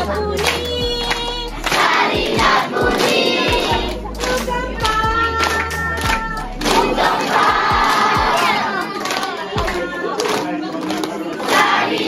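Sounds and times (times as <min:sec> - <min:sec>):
children shouting together: 0:05.2 - 0:10.3.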